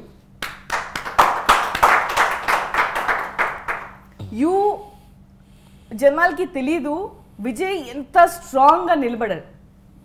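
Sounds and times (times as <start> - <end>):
hands clapping in steady rhythm: 0.4 - 4.1.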